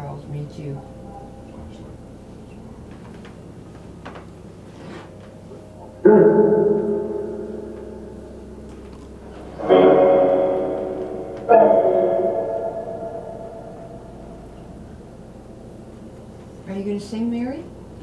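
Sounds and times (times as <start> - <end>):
echoing ringing pitched sounds: 5.9 - 16.1.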